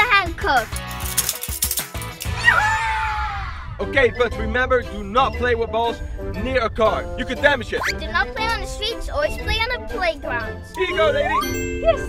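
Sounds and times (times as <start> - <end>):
background music: 0.0 - 12.0
handcuffs clicking and clinking: 0.6 - 2.4.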